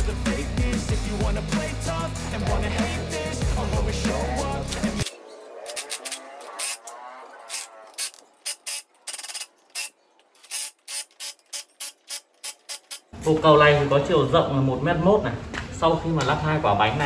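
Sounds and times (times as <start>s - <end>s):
background music: 0.0s - 8.3s
impact wrench bursts: 7.5s - 13.2s.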